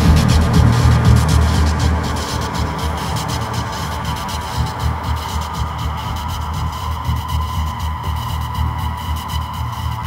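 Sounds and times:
low throbbing hum: 0.0s - 10.0s.

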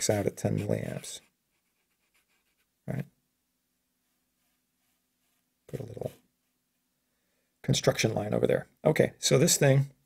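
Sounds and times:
marker scratching on paper: 0.0s - 2.7s.

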